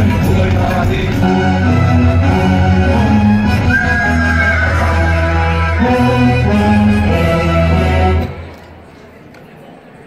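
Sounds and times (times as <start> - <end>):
folk dance music with drone: 0.0 - 8.5.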